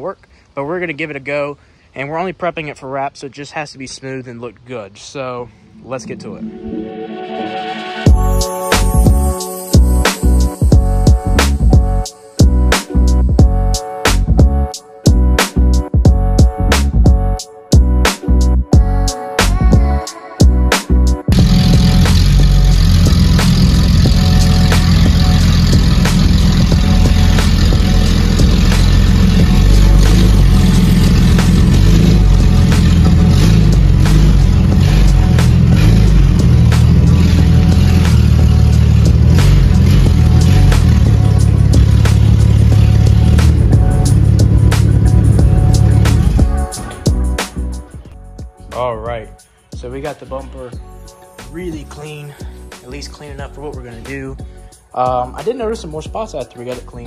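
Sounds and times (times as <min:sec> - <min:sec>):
background music: 0:05.5 - 0:57.0
car engine running: 0:21.3 - 0:47.2.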